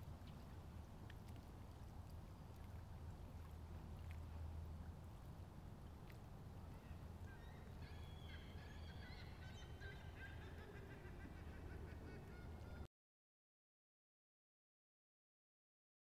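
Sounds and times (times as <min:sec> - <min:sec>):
birds calling: 0:06.8 - 0:12.9.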